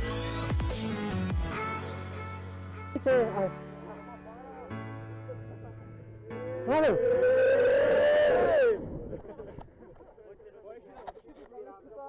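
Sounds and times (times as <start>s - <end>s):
man's long held shout: 6.4s - 8.8s.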